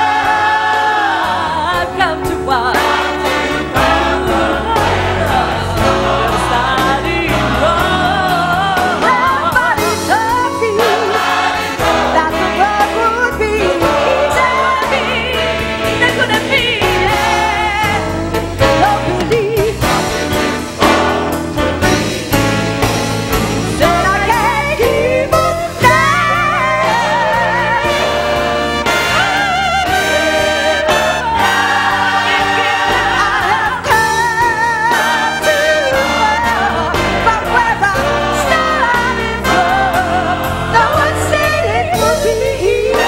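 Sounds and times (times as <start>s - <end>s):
women lead singers with vibrato: 0.0s - 20.1s, 23.7s - 43.0s
band with keyboard and beat: 0.0s - 43.0s
gospel choir singing: 0.0s - 43.0s.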